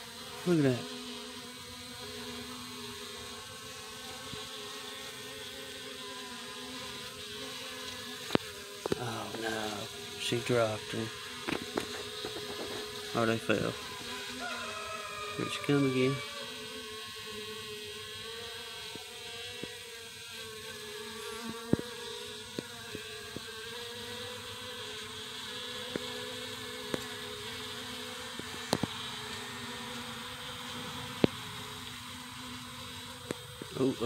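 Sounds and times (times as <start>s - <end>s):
bees buzzing: 0.0s - 34.0s.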